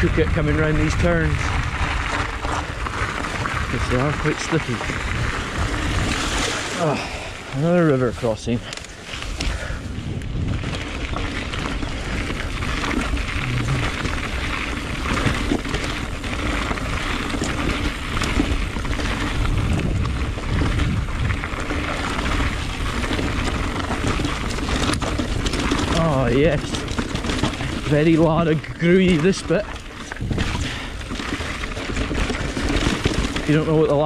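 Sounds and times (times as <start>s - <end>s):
bike tyres rumbling over gravel: 0.0s - 34.0s
small clicks from trail: 0.0s - 34.0s
wind noise on microphone: 0.0s - 34.0s.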